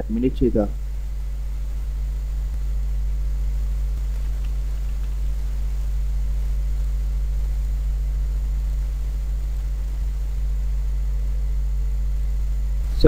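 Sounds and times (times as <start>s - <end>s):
low electrical hum: 0.0s - 13.0s
steady hiss: 0.0s - 13.0s.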